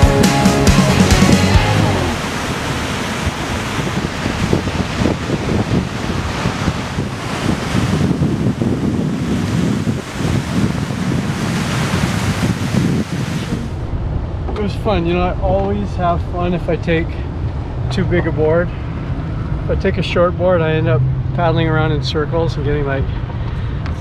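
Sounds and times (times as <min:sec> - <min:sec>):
ocean surf breaking: 0:00.0 - 0:23.1
wind buffeting microphone: 0:01.2 - 0:24.0.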